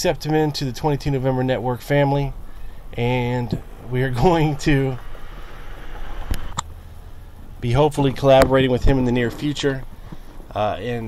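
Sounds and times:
room and microphone background noise: 0.0 - 11.0.

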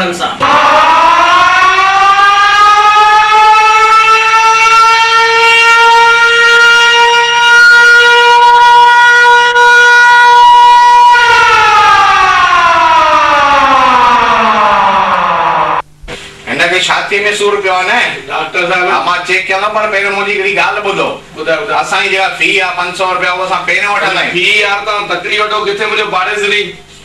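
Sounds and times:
siren wailing: 0.0 - 15.8.

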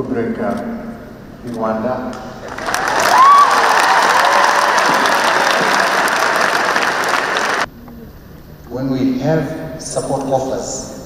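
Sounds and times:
large audience applauding: 2.4 - 7.7.

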